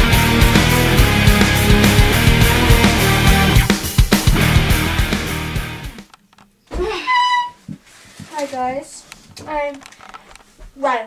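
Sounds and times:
wooden door hinge creaking: 6.7s - 7.7s.

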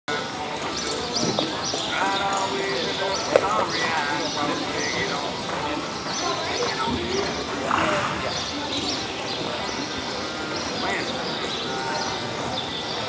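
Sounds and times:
people talking in echoing arena: 0.1s - 13.0s.

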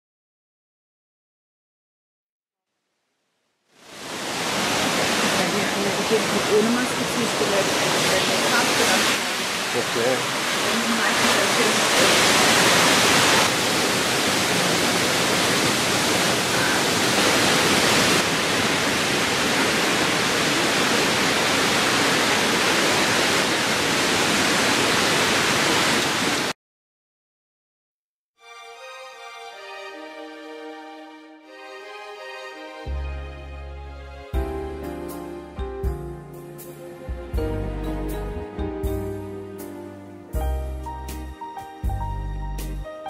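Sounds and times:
waterfall rushing: 3.8s - 26.5s.

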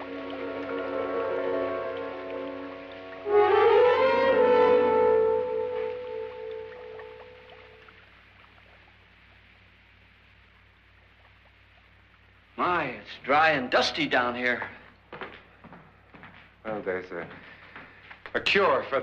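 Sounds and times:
dramatic orchestral music: 0.0s - 7.4s.

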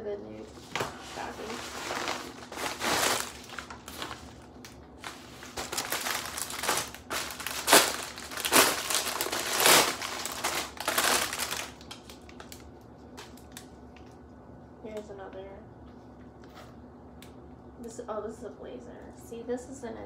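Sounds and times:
plastic packaging crinkling: 0.6s - 14.2s.

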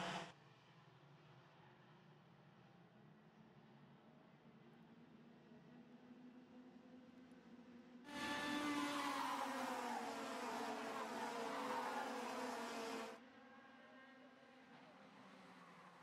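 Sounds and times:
racing kart engines buzzing: 0.0s - 0.3s, 8.1s - 13.2s.

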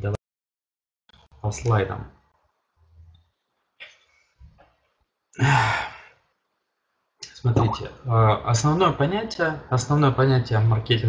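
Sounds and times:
man sighing: 5.4s - 6.2s.

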